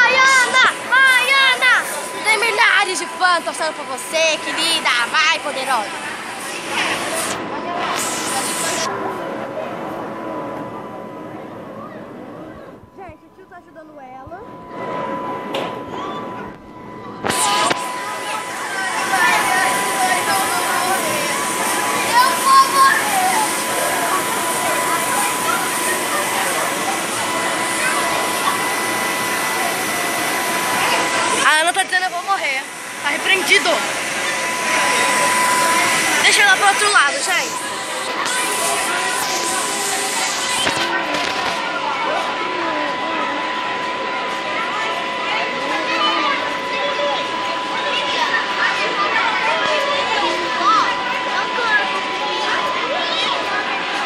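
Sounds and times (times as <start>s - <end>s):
indistinct voices: 0.0s - 54.0s
steady noise: 0.0s - 54.0s
bursts of hiss: 6.2s - 8.9s
thin high tone: 12.6s - 54.0s.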